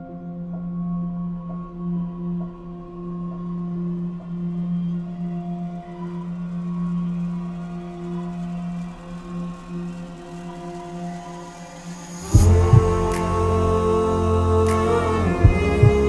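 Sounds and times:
ambient music with low drone: 0.0s - 16.0s.

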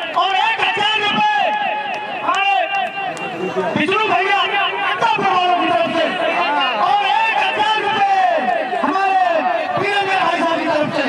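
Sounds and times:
crowd noise: 0.0s - 11.0s
man announcing through microphone: 0.0s - 11.0s.

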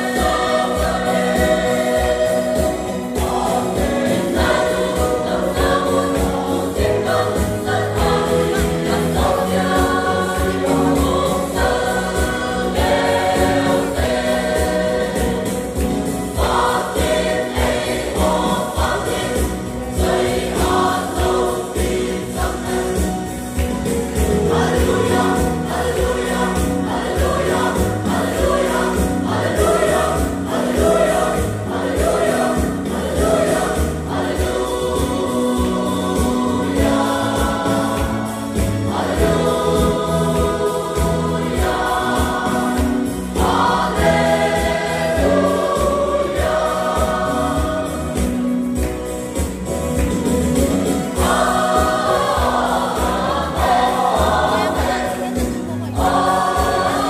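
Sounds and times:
mixed choir singing gospel: 0.0s - 57.0s.

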